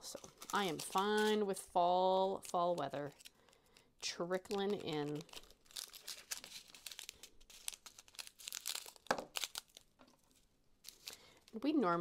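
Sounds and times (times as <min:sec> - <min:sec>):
plastic baggies crinkling: 0:00.0 - 0:01.5, 0:02.3 - 0:11.8.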